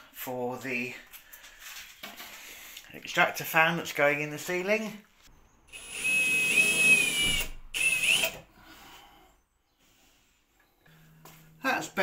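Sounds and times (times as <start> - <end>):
power tool cutting plasterboard: 5.8 - 8.4.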